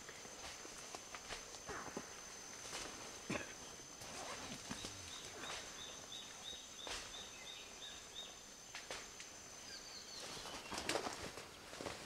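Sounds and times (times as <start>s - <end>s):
leaves rustling and crackling: 10.1s - 12.0s.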